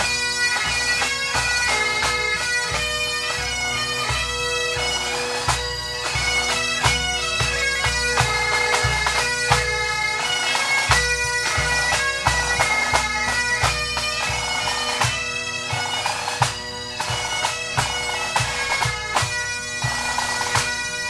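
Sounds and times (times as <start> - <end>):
bagpipes playing melody: 0.0 - 21.0
drums beating: 0.0 - 21.0.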